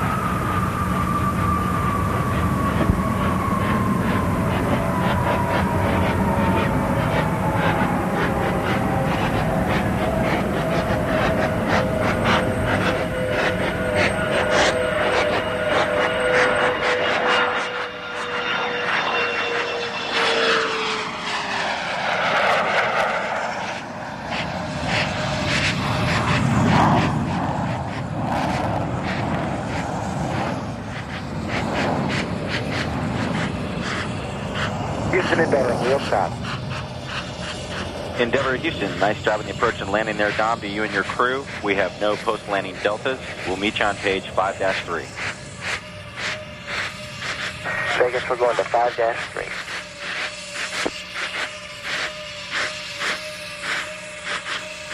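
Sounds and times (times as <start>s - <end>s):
jet engine whine: 0.0s - 54.9s.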